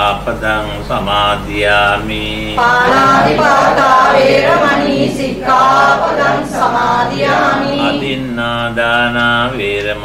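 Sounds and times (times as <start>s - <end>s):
voices chanting melodic phrases: 2.6s - 8.4s.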